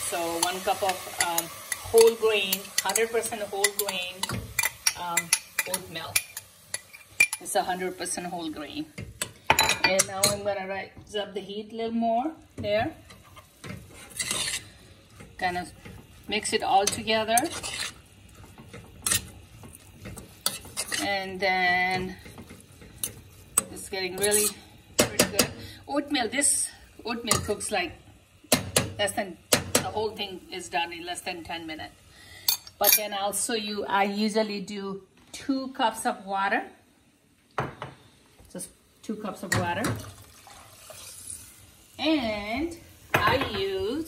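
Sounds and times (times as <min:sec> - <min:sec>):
spoon scraping in pot: 0:00.4 - 0:07.5, 0:13.0 - 0:25.6
water pouring into saucepan: 0:40.0 - 0:41.8.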